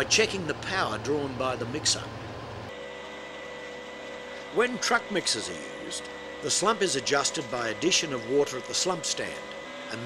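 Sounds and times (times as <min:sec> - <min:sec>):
machinery hum: 0:00.0 - 0:10.0
thin high whine: 0:00.7 - 0:10.0.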